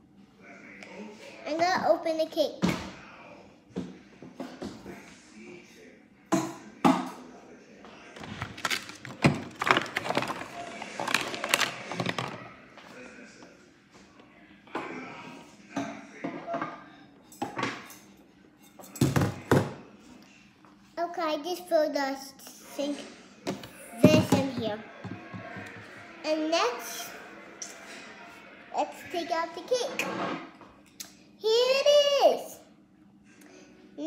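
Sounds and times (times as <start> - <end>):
plastic toy pieces clattering: 8.2 - 12.4.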